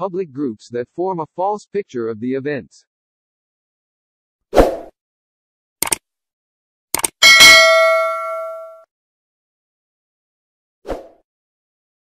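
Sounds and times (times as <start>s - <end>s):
quick clicks: 5.8s - 6.0s, 6.9s - 7.2s
notification bell ding: 7.2s - 8.8s.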